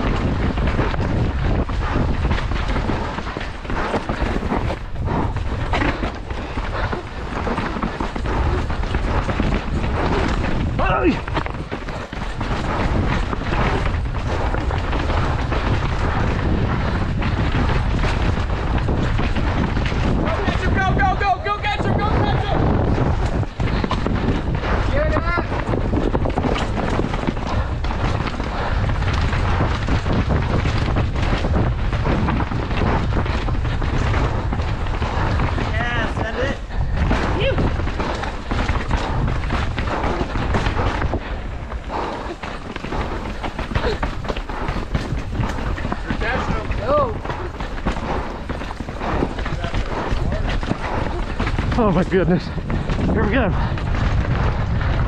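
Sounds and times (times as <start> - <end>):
mountain bike rattling over rocks: 0.0 - 55.0
wind rumble on microphone: 0.0 - 55.0
heavy breathing: 0.1 - 20.6, 22.6 - 55.0.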